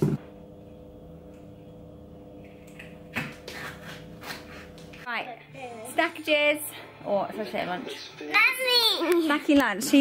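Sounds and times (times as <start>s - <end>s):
steady low hum: 0.0s - 7.5s.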